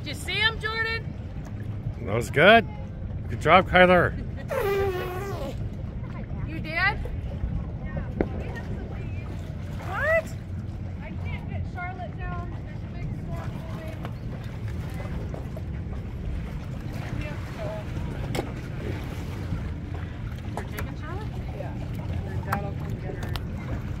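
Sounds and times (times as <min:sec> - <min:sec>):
wind rumble on microphone: 0:04.1 - 0:24.0.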